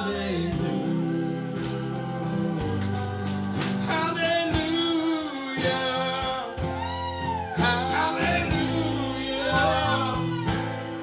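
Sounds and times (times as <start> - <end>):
live band playing slow song: 0.0 - 11.0.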